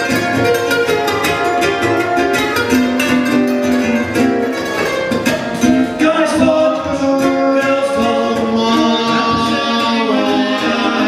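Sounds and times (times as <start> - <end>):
ukuleles strummed: 0.0 - 11.0
male voices singing in harmony: 6.0 - 11.0.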